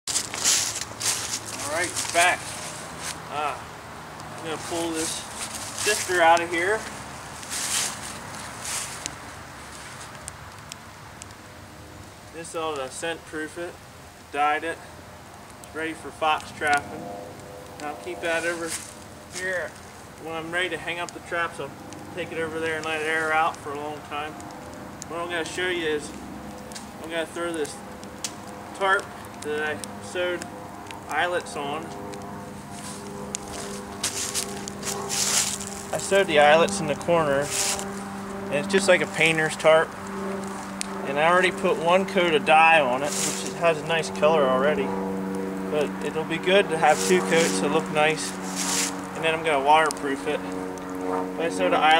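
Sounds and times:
wood fire crackling: 0.0s - 51.9s
canvas tarp rustling and scraping: 0.1s - 3.6s, 4.4s - 10.1s, 17.9s - 19.9s, 32.5s - 39.6s, 42.7s - 44.3s, 46.1s - 49.3s
fire hissing: 0.1s - 51.9s
steady low hum: 13.6s - 51.9s
sharp pops of fire: 21.8s - 36.9s.

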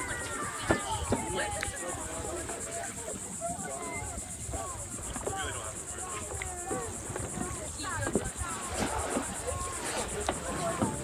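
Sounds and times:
faint voices talking: 0.0s - 11.0s
pulsing insect chorus: 0.0s - 11.0s.

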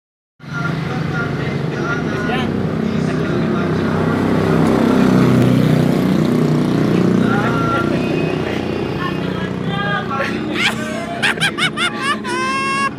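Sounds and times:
motorcycle engine running: 1.8s - 10.2s
people talking: 6.9s - 12.5s.

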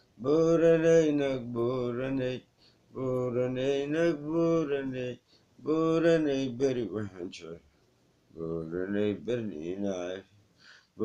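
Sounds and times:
man chanting unaccompanied: 0.2s - 2.4s, 3.0s - 7.7s, 8.4s - 10.3s.

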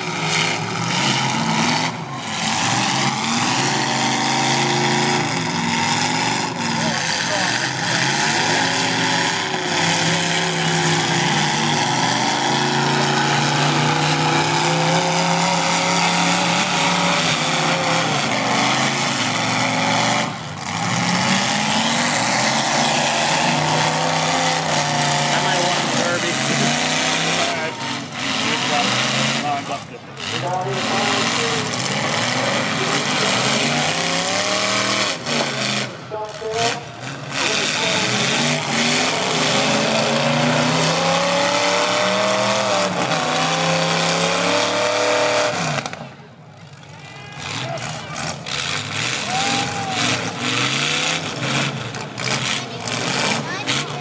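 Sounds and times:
car engines revving: 0.0s - 54.0s.

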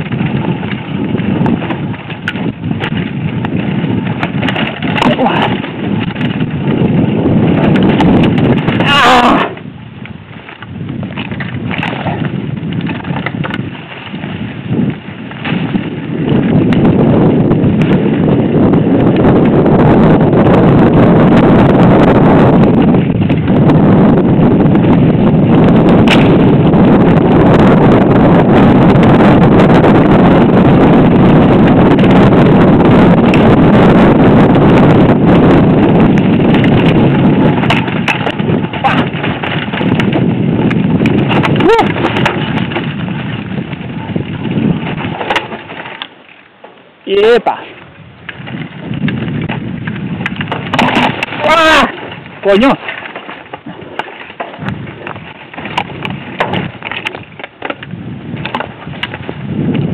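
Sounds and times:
bike knocking and rattling: 0.0s - 59.9s
wind rumble on microphone: 0.0s - 59.9s.

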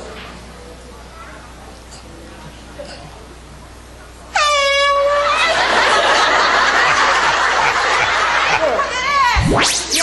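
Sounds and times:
air horn blast: 4.3s - 5.4s
loud even rush of noise: 9.4s - 10.0s.

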